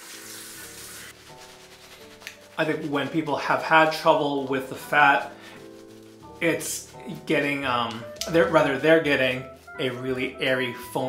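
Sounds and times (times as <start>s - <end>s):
bathroom tap running: 0.0s - 2.5s
faint background music: 0.0s - 11.0s.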